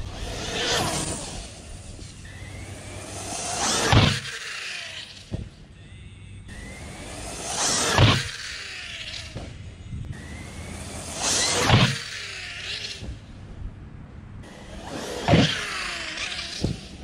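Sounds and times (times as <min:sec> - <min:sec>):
rc car electric motors whining: 0:00.0 - 0:13.6, 0:14.4 - 0:17.0.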